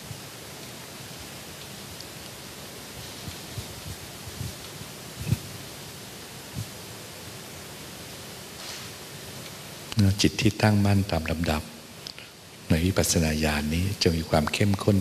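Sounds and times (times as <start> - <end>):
sound system hiss: 0.0 - 15.0.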